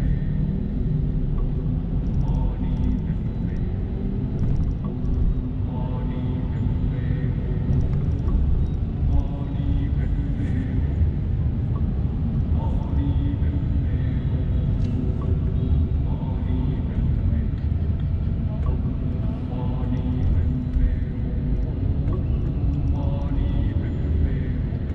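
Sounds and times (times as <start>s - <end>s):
car cabin road rumble: 0.0s - 24.9s
people talking: 2.1s - 4.6s, 5.7s - 11.0s, 12.4s - 21.4s, 22.1s - 24.9s.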